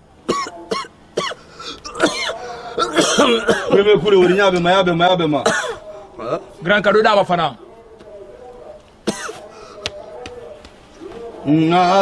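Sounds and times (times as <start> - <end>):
man coughing: 0.3 - 4.4, 5.4 - 6.4, 9.0 - 9.5.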